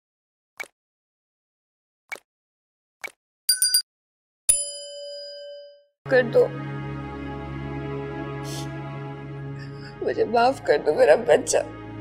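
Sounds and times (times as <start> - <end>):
notification bell ding: 3.5 - 3.8.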